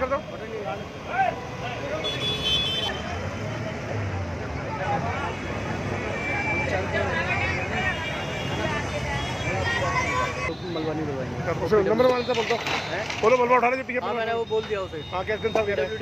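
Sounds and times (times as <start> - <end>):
people talking: 6.5 - 16.0.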